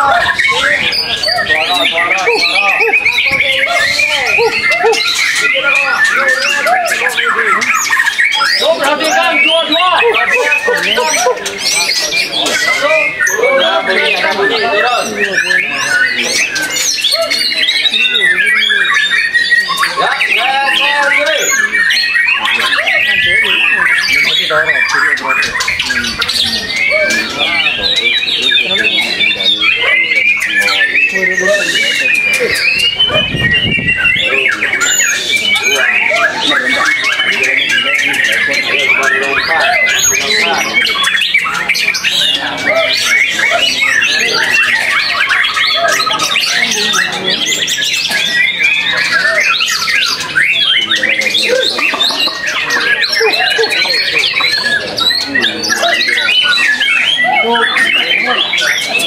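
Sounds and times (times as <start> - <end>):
songbird singing: 0.0 - 59.0.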